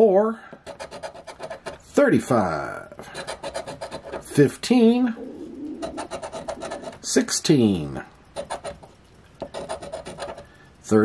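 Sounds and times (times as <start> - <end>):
coin scraping scratch-off ticket: 0.6 - 1.9, 3.0 - 4.5, 5.2 - 7.2, 8.3 - 10.5.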